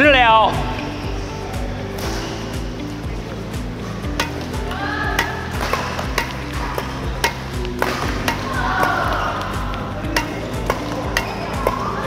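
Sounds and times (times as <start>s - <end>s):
background music with held tones: 0.0s - 12.0s
badminton racket hitting shuttlecocks: 4.0s - 12.0s.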